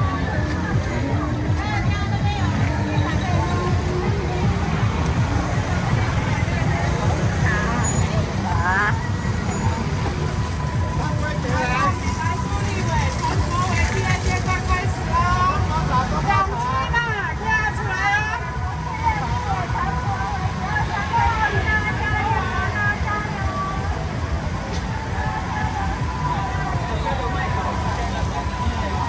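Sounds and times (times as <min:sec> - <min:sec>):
crowd chatter: 0:00.0 - 0:29.0
vehicle engines rumbling: 0:00.0 - 0:29.0.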